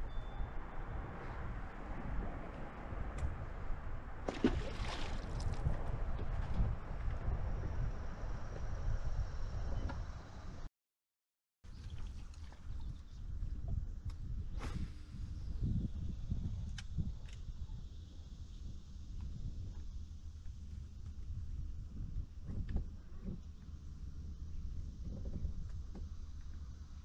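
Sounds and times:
wind buffeting microphone: 0.0 - 10.6, 11.7 - 26.2.

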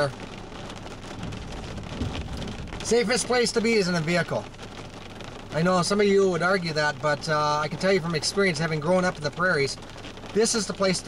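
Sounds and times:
low rumble of thunder: 0.0 - 4.7
heavy rain on windshield and roof: 0.0 - 11.0.

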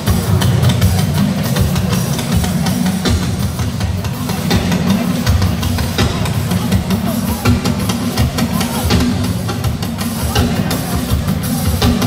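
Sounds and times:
drum and cymbal hits: 0.0 - 12.0
heavy bass: 0.0 - 12.0.

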